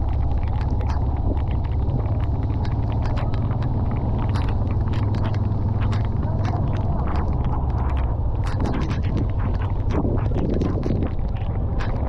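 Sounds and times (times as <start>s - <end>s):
raindrops ticking on microphone: 0.0s - 12.0s
vehicle engine rumble: 0.0s - 12.0s.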